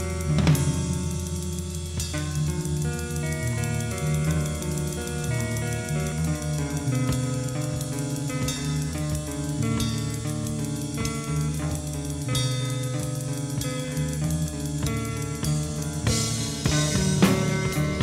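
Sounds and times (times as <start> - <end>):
band music from cassette tape: 0.0 - 18.0.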